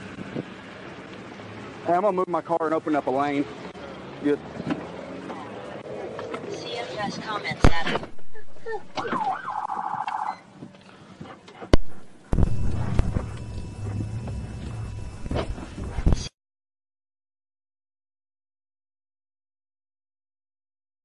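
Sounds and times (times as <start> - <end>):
car engine rumble: 0.0 - 9.6, 10.5 - 16.3
police siren burst: 8.9 - 10.5, 11.8 - 15.4.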